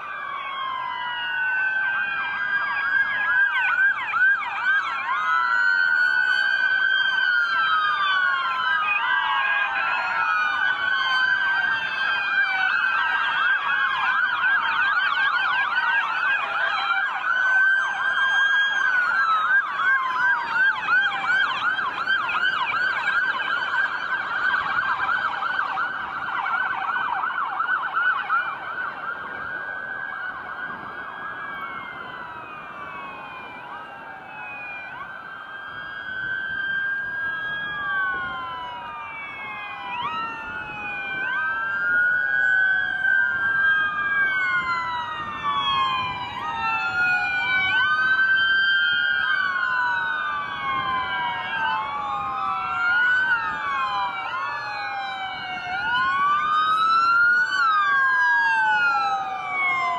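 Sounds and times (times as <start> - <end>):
emergency vehicle sirens: 0.0 - 59.9.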